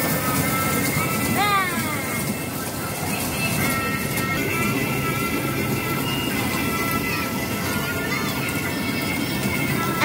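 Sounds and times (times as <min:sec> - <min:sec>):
electronic children's music: 0:00.0 - 0:10.0
ride rumbling on track: 0:00.0 - 0:10.0.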